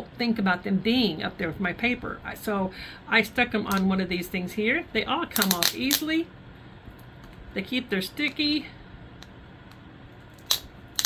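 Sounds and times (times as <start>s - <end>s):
sticker peeling crackle: 5.4s - 6.1s.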